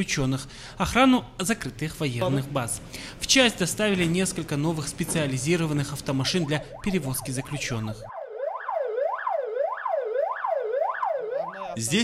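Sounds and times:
siren rising and falling: 0:06.2 - 0:11.8.

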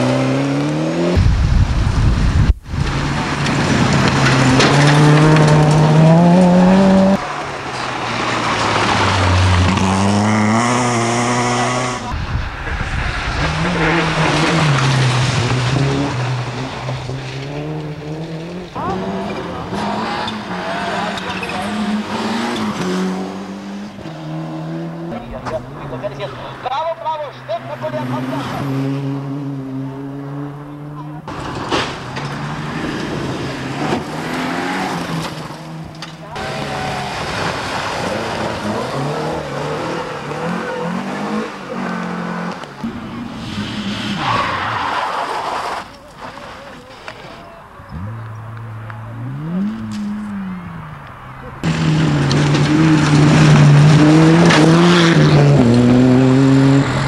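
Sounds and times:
rally car engines revving hard: 0:00.0 - 0:01.2, 0:02.8 - 0:57.0.

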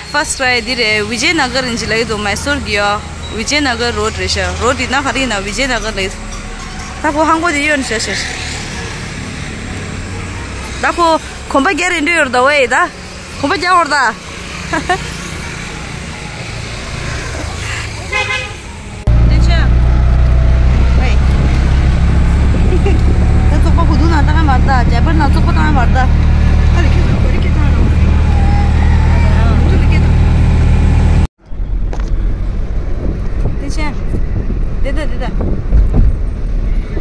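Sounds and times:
car engine and tyre rumble: 0:00.0 - 0:37.0.

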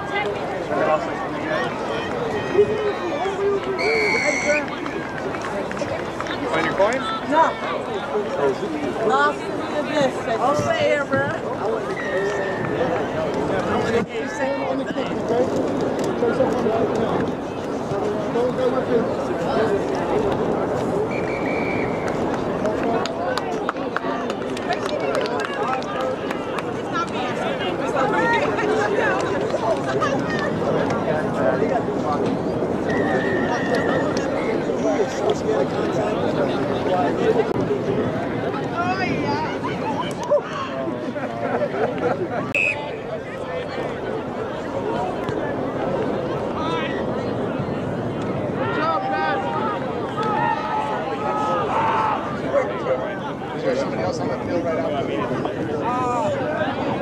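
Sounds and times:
voices talking and calling: 0:00.0 - 0:57.0.

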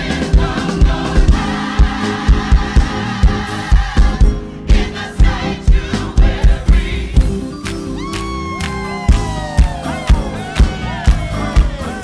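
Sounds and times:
gospel choir singing: 0:00.0 - 0:07.6, 0:08.8 - 0:12.0
music with heavy beat: 0:00.0 - 0:12.0.

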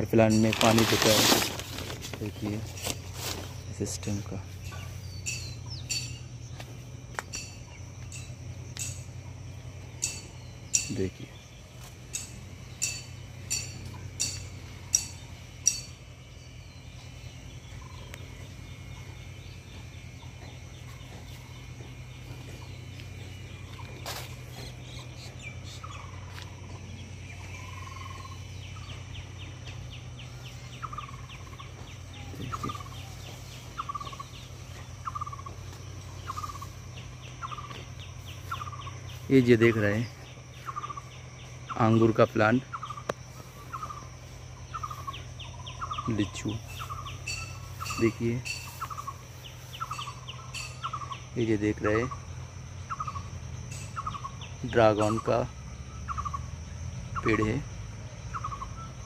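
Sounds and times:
small birds chirping: 0:00.0 - 0:59.0
steady low hum: 0:00.0 - 0:59.0.

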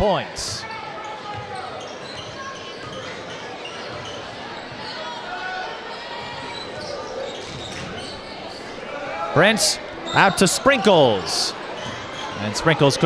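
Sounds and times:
murmur of crowd voices: 0:00.0 - 0:13.0.

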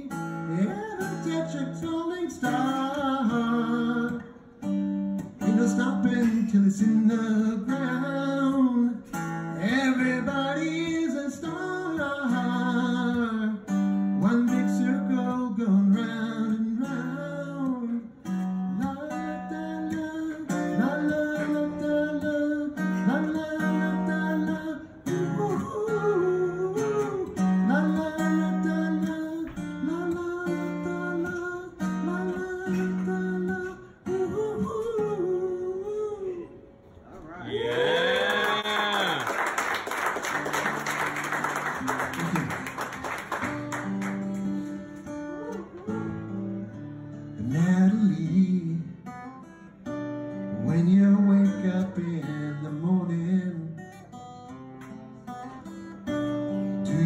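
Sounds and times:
acoustic guitar picking: 0:00.0 - 0:37.0, 0:40.1 - 0:57.0
person cheering: 0:37.2 - 0:39.6
audience applause: 0:37.6 - 0:44.4.

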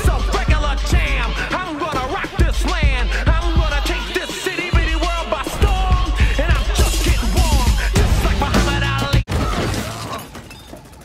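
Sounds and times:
music: 0:00.0 - 0:09.3.

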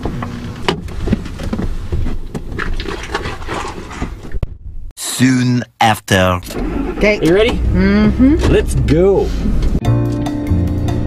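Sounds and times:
low steady rumble: 0:06.1 - 0:09.8.

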